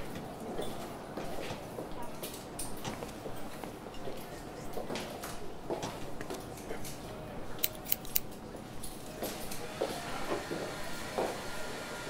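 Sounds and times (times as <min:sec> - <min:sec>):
scissors clicking shut: 0:07.6 - 0:08.3.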